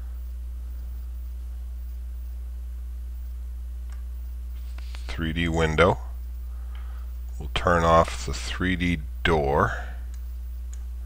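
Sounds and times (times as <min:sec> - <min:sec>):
electrical mains hum: 0:00.0 - 0:11.0
faint clicks: 0:10.1 - 0:10.9.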